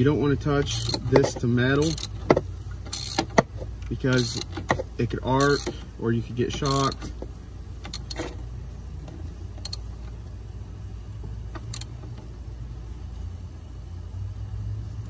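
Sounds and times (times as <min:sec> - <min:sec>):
steady low hum: 0:00.0 - 0:15.0
metallic ratchet clicks: 0:00.6 - 0:02.2, 0:02.9 - 0:05.8, 0:06.5 - 0:07.1, 0:07.8 - 0:08.3, 0:09.6 - 0:09.9, 0:11.6 - 0:12.0.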